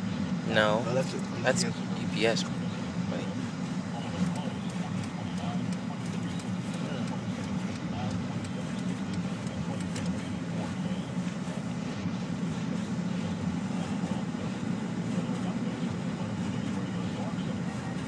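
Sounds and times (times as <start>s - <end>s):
engine and road drone in cabin: 0.0s - 18.0s.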